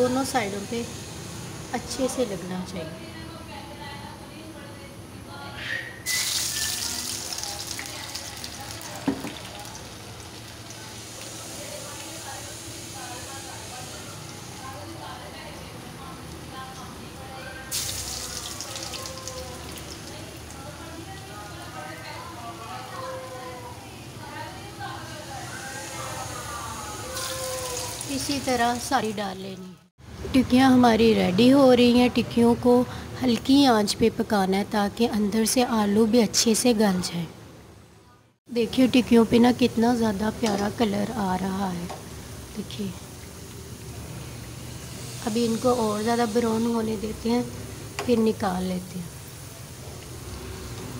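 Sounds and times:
food sizzling in hot oil: 0.0 - 2.5, 6.0 - 29.9, 38.7 - 50.9.

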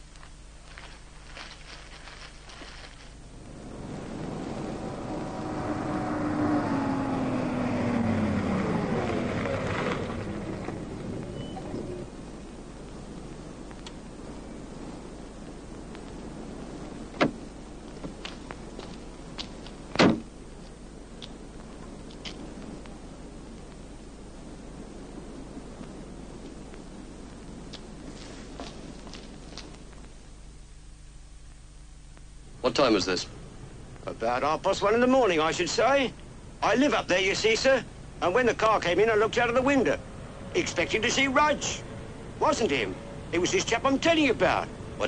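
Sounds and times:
car engine slowing to a stop: 3.4 - 12.2
car door opening and slamming: 17.2 - 17.4, 20.0 - 20.3.

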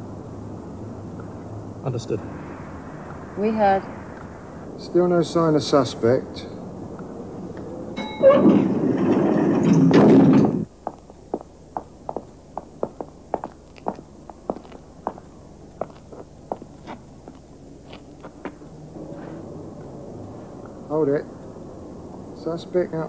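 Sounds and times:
loud rushing noise: 0.0 - 7.9
footsteps: 10.6 - 19.5.

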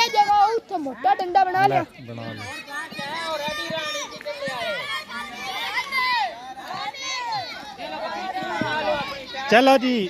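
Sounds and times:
children calling and chattering: 0.0 - 10.0.

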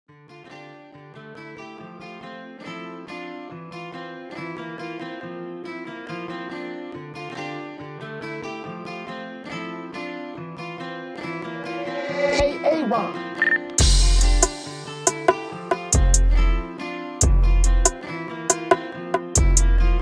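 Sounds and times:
plucked guitar melody: 0.1 - 20.0.

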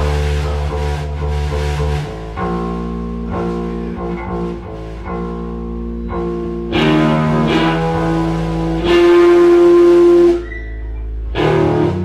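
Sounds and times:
electric guitar sustained note: 0.0 - 12.0.

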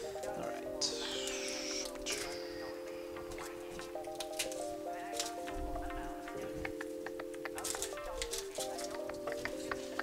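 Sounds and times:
background music held notes: 0.0 - 10.0
garlic skins crackling: 3.1 - 5.6, 6.7 - 10.0.

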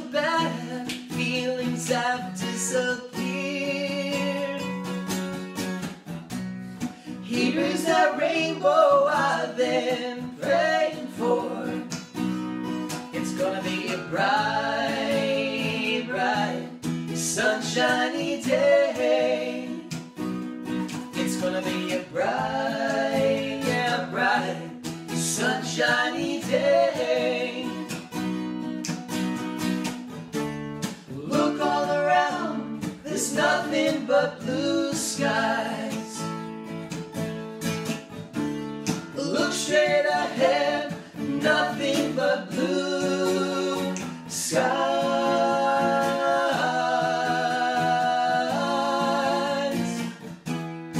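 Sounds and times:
two men singing: 0.0 - 4.8, 7.1 - 12.0, 13.0 - 20.0, 21.0 - 28.0, 31.1 - 36.2, 39.1 - 50.2
strummed acoustic guitar: 0.0 - 50.9.

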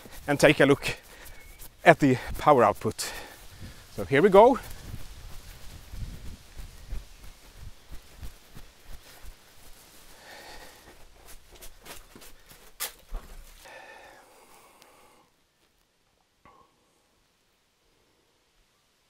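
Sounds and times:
footsteps on grass: 0.0 - 13.7
footsteps on concrete steps: 0.0 - 13.8.

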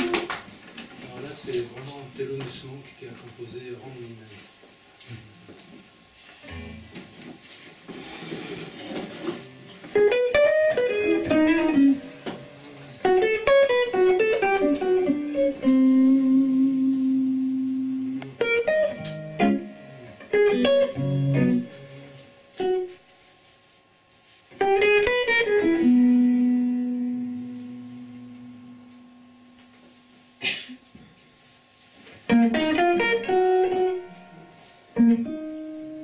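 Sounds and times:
electric jazz guitar runs: 0.0 - 0.4, 6.5 - 7.0, 8.0 - 23.2, 24.5 - 31.0, 32.2 - 36.0.

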